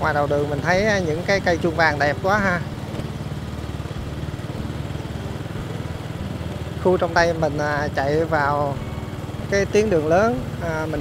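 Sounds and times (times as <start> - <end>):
small motorbike engine running: 0.0 - 11.0.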